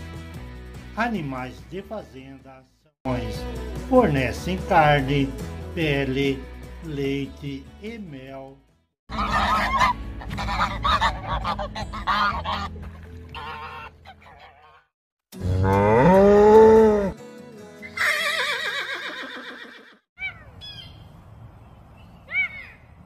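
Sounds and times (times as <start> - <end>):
geese honking: 9.1 - 12.7, 13.3 - 14.8
cow mooing: 15.4 - 17.2.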